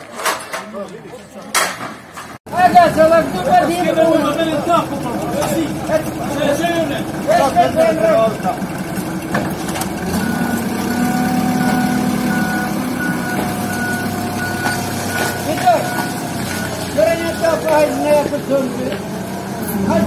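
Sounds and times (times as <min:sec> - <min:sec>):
voices: 0:00.0 - 0:20.0
forklift engine running: 0:02.5 - 0:20.0
reversing alarm beeping: 0:10.1 - 0:18.0.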